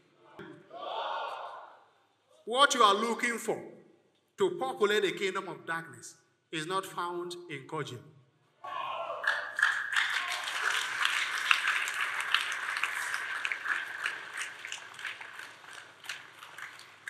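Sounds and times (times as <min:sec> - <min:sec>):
congregation applauding: 0:09.2 - 0:17.0.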